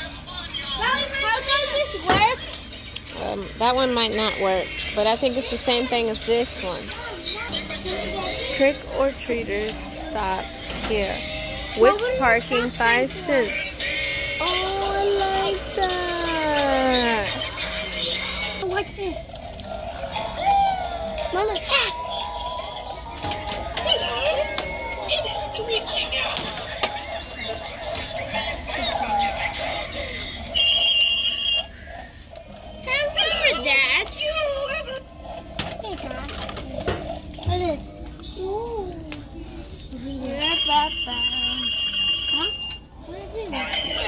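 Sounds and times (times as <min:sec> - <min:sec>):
electronic singing toy: 0:22.3 - 0:32.1, 0:40.4 - 0:43.0
high electronic telephone ring: 0:30.6 - 0:31.7, 0:40.4 - 0:42.8.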